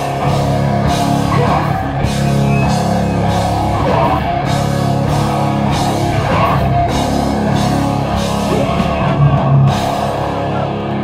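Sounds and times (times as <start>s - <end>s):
drum kit: 0.0s - 11.0s
electric guitar: 0.0s - 11.0s.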